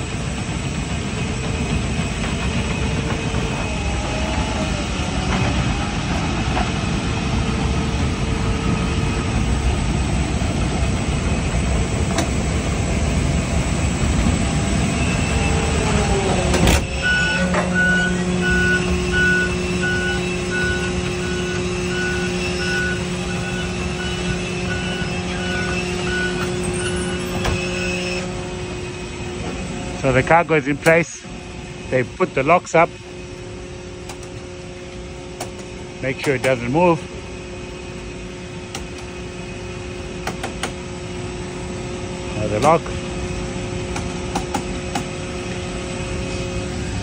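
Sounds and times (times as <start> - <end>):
motors humming: 0.0 - 47.0
warning beeper: 14.9 - 29.2.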